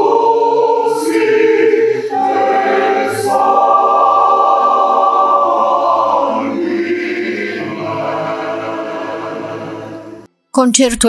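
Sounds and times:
mixed choir singing chords: 0.0 - 10.3.

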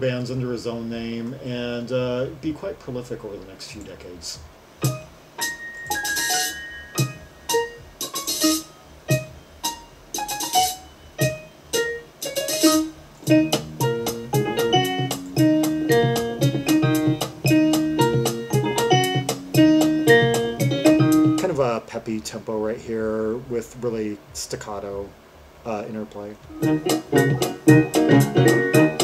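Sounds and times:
jazz-rock instrumental: 4.8 - 21.6, 26.4 - 29.0.

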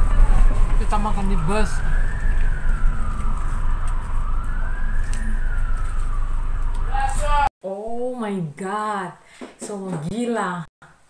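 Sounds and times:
bus rumble: 0.0 - 7.5
emergency vehicle siren wailing: 0.0 - 7.5.

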